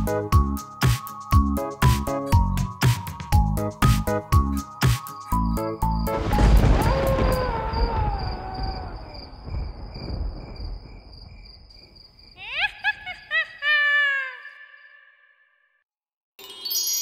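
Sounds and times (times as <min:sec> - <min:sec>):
crickets chirping: 0:04.2 - 0:15.2.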